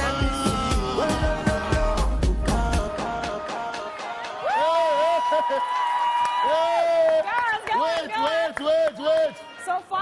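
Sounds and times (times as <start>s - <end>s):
voices shouting and whooping: 4.2s - 7.5s.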